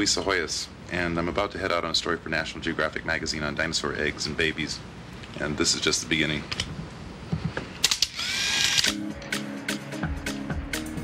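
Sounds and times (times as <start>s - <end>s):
camera motor winder whirring: 7.8s - 9.0s
music with steady beat: 8.9s - 11.0s.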